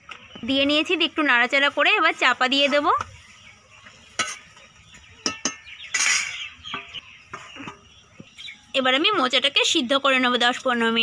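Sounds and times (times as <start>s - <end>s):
spoon scraping pan: 2.5s - 8.0s
spoon clinking against pan: 4.2s - 4.6s, 5.2s - 7.4s.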